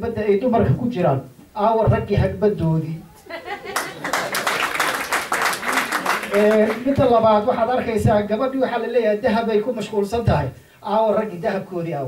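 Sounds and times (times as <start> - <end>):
crowd applauding: 3.1 - 7.5.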